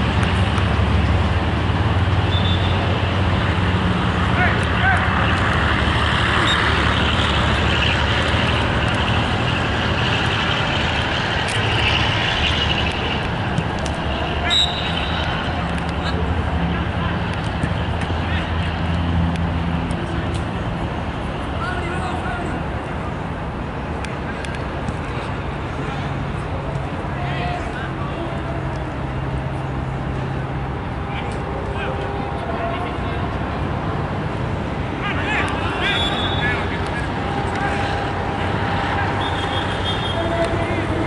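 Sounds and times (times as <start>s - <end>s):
players shouting: 4.1s - 9.0s, 13.5s - 18.9s, 25.8s - 28.9s, 34.9s - 41.0s.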